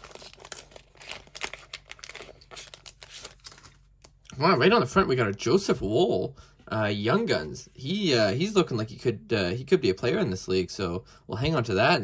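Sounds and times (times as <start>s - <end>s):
wrapper crinkling and tearing: 0.0s - 4.3s.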